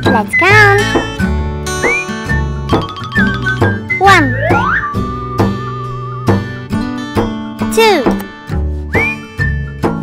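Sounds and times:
plucked guitar-like background music: 0:00.0 - 0:10.0
swooping sound effect: 0:02.9 - 0:05.2.

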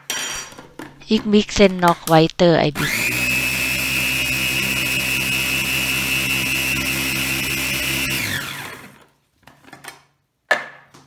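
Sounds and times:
electric food chopper whining: 0:02.8 - 0:09.1.

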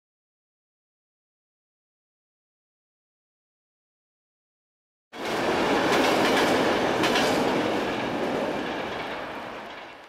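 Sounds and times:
tram wheels rolling on rails: 0:05.2 - 0:10.0.

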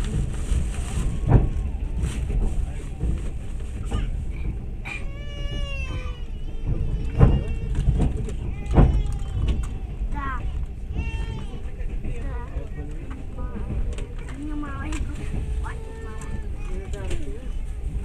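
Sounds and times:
train rumbling inside carriage: 0:00.0 - 0:18.0
wheels knocking on rails: 0:00.0 - 0:18.0.

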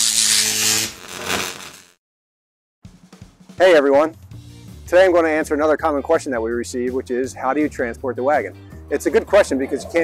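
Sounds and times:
electric buzz and crackle: 0:00.0 - 0:02.0.

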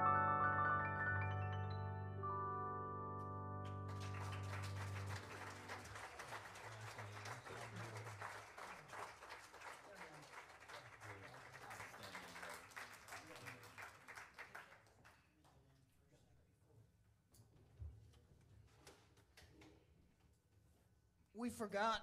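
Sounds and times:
piano chord: 0:00.0 - 0:06.0
audience applauding: 0:03.6 - 0:15.1.

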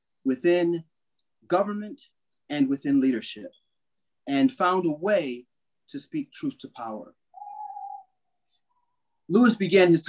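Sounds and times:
whistle-like tone: 0:07.4 - 0:08.1.

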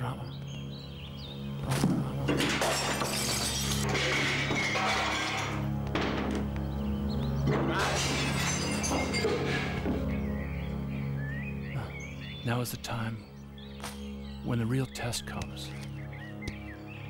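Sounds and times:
low droning background music: 0:00.0 - 0:17.0
glass smashing: 0:02.3 - 0:06.3, 0:07.5 - 0:10.0.

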